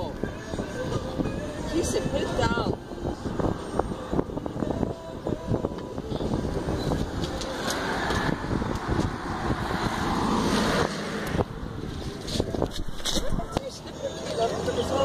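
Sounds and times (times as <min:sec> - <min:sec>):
vehicle passing on street: 0:00.0 - 0:15.0.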